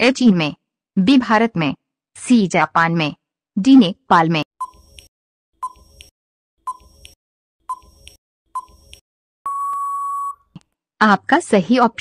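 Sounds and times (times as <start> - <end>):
steady electronic beep: 9.5 - 10.4.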